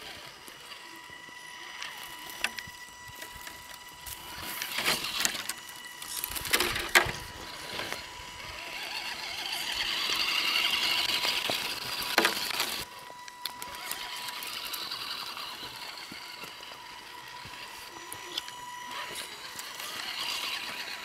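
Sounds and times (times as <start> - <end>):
electric motor whining: 0.0 - 21.0.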